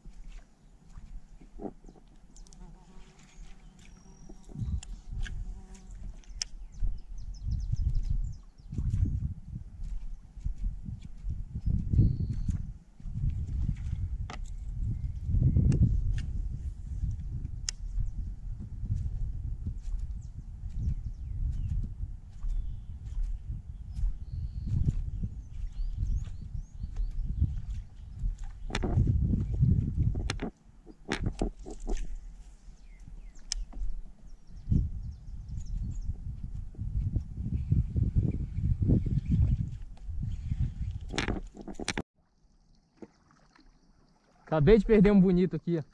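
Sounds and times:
wind buffeting microphone: 4.3 - 42.0
clicks and knocks from fishing gear: 13.8 - 14.6, 27.6 - 29.1, 30.0 - 32.2, 33.4 - 34.2, 41.0 - 42.0.

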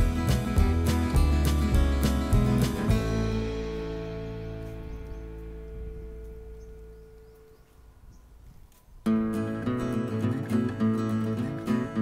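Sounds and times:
background music: 0.0 - 7.0
guitar music: 0.0 - 7.7, 9.0 - 12.0.

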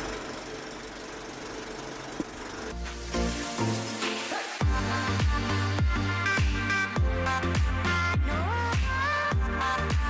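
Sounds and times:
film projector whirring: 0.0 - 4.4.

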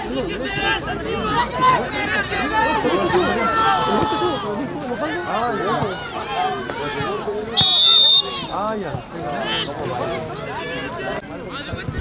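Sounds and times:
spectators shouting: 0.0 - 11.2.

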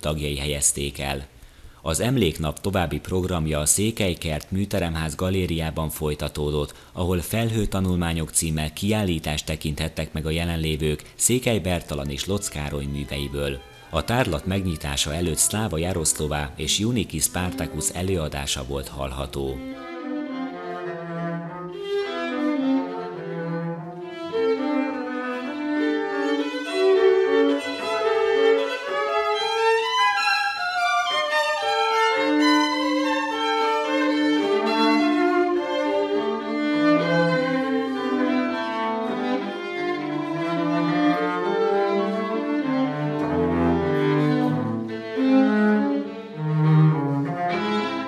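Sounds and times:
cello playing: 2.0 - 48.0
violin playing: 10.2 - 48.0.

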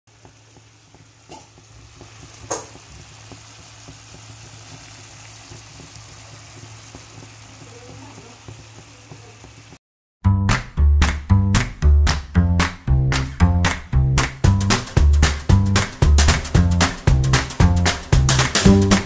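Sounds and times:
sauce simmering in a frying pan: 0.1 - 9.8.

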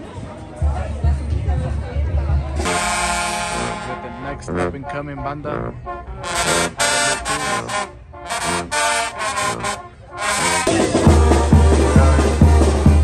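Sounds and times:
brass band playing: 2.6 - 13.0
loud music with strong low beat: 10.6 - 13.0.

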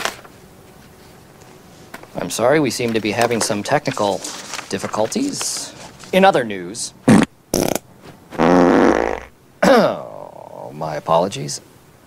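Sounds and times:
man making buzzing mouth noise: 7.0 - 10.5.

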